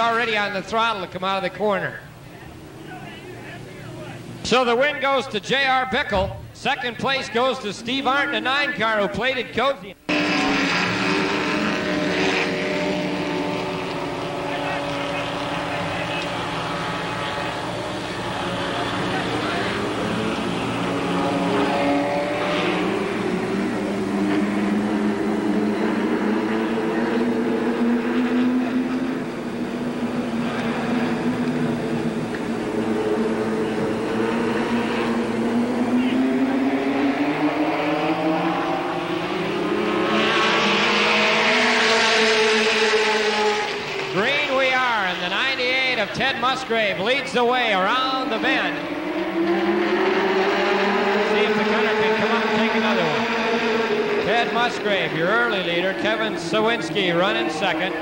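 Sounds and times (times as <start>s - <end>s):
stock car engines racing: 0.0s - 58.0s.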